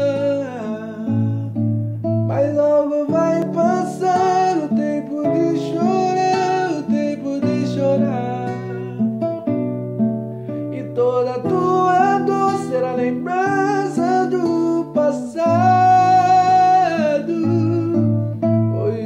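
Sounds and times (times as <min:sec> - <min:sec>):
slow acoustic guitar: 0:00.0 - 0:19.0.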